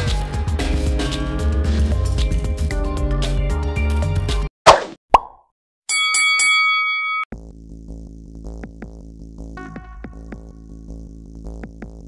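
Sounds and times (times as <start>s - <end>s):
background music: 0.0s - 4.5s
sharp plop sound effect: 4.7s - 5.5s
bright ringing chime: 5.9s - 7.3s.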